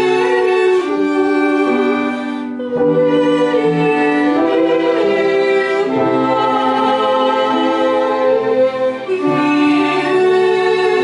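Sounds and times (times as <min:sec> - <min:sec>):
violins clarinet and piano carol: 0:00.0 - 0:11.0.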